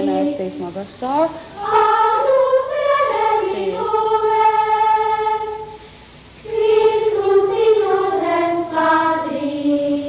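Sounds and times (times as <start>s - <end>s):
children singing in unison: 1.6s - 5.8s, 6.4s - 10.0s.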